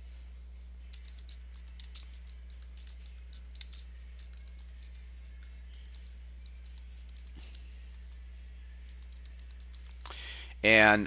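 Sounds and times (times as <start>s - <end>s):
steady low hum: 0.0s - 11.0s
computer keyboard keys clicking: 0.9s - 8.2s, 8.8s - 10.1s.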